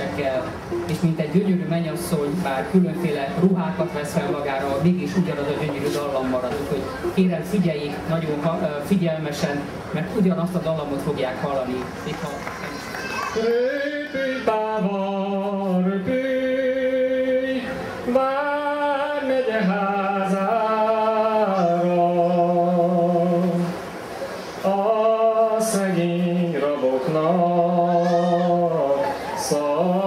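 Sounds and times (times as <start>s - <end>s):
man singing unaccompanied: 0.0s - 9.7s, 13.3s - 23.8s, 24.6s - 30.0s.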